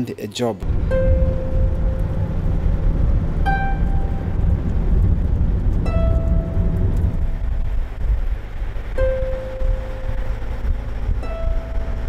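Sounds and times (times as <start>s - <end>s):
background music note: 0.6s - 12.0s
car driving on asphalt: 0.6s - 12.0s.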